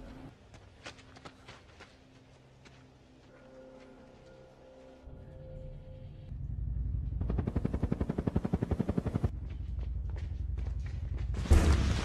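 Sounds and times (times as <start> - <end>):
low rumble: 6.1 - 8.4.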